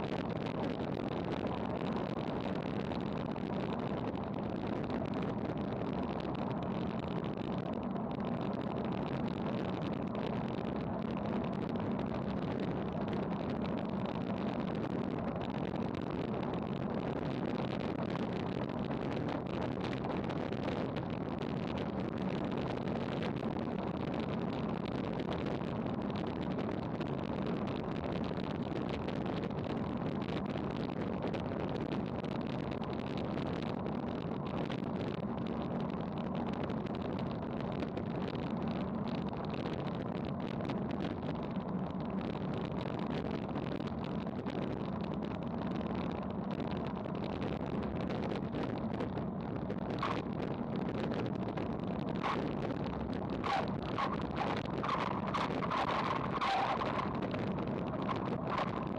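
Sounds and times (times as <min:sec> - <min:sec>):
wind rushing over camera: 0:00.0 - 0:58.9
tyre and road noise: 0:51.6 - 0:58.9.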